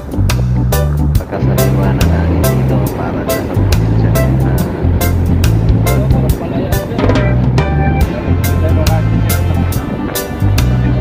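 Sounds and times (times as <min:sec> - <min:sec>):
music with steady beat and bass: 0:00.0 - 0:11.0.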